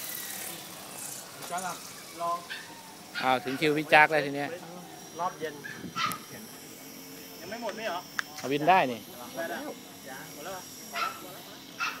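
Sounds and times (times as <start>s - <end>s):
man speaking: 3.2s - 5.7s.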